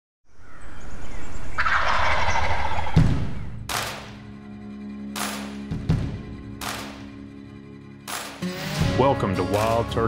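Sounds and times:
turkey gobbling: 0:01.5 - 0:03.4
thud: 0:03.0 - 0:03.5.

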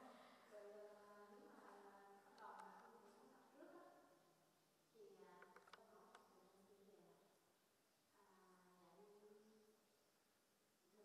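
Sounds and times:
low steady hum: 0:00.0 - 0:11.0
soft clicks: 0:05.3 - 0:06.3.

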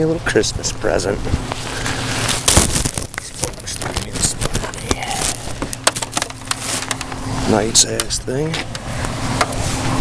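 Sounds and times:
plastic garbage bag rustling: 0:01.6 - 0:07.9.

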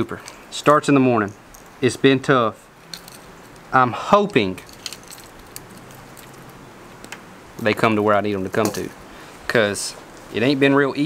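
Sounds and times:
low steady background noise: 0:00.0 - 0:11.0
fishing tackle clicking and jingling: 0:01.2 - 0:01.8, 0:02.8 - 0:03.7, 0:04.4 - 0:07.2.

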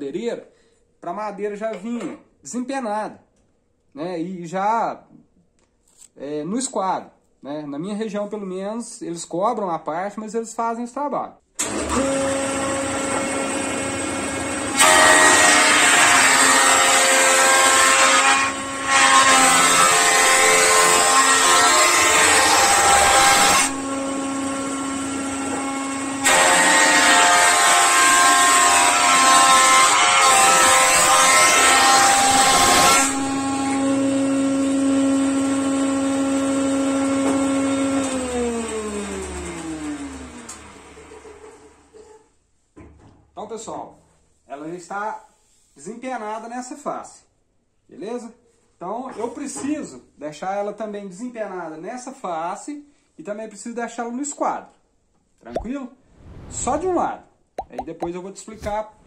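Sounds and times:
jointer planing wood: 0:11.6 - 0:41.9.

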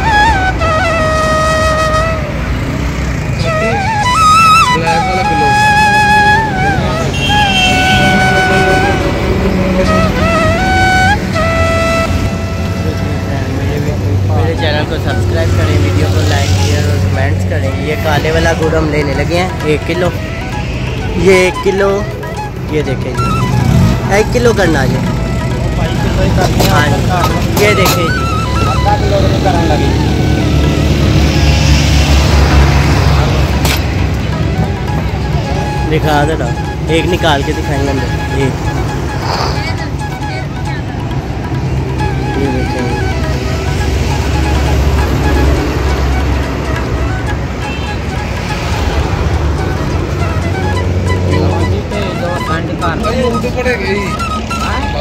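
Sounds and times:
road traffic rumble: 0:00.0 - 0:55.0
people talking: 0:04.6 - 0:09.1, 0:12.7 - 0:20.2, 0:25.8 - 0:30.0, 0:35.5 - 0:38.6, 0:42.2 - 0:43.1, 0:51.3 - 0:55.0.

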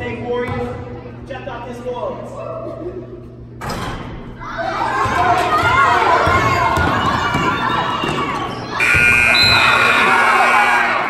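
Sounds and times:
people shouting in a gymnasium: 0:04.3 - 0:11.0
scoreboard buzzer horn: 0:08.8 - 0:11.0.

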